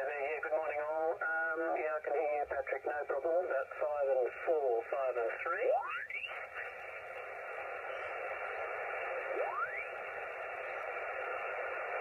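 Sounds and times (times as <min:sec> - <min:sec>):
radio band hiss: 0:00.0 - 0:12.0.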